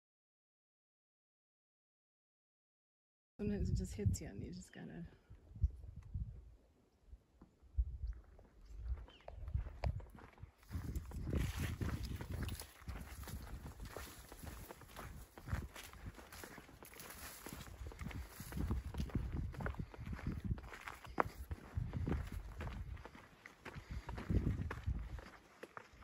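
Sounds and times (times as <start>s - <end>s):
footsteps crunching on dirt trail: 8.2s - 26.0s.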